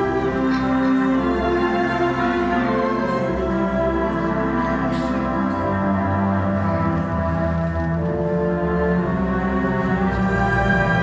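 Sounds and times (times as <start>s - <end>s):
slow orchestral string chords: 0.0s - 11.0s.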